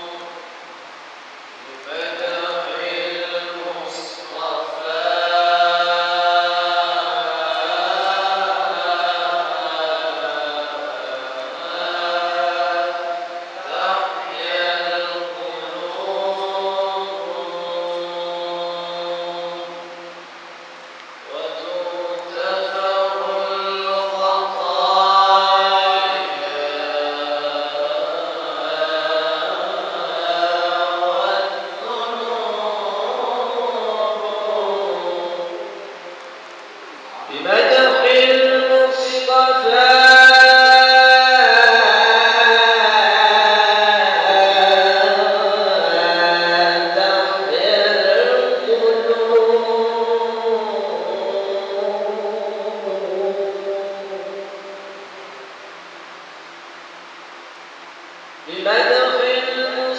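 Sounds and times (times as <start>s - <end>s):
men reciting melodically: 0.0s - 55.6s, 57.5s - 59.9s.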